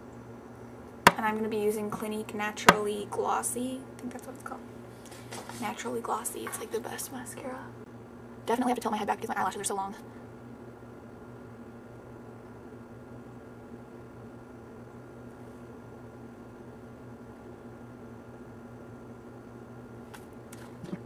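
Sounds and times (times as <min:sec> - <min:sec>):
low electrical hum: 0:00.0 - 0:21.0.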